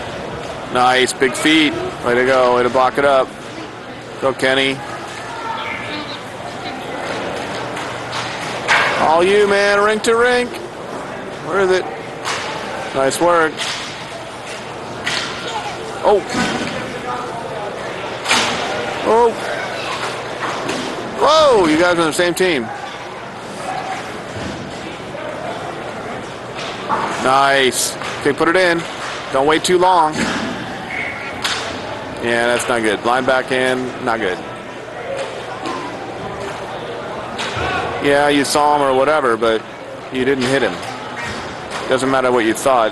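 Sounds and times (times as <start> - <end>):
distant players' voices: 0.0 - 42.9
rink background noise: 0.0 - 42.9.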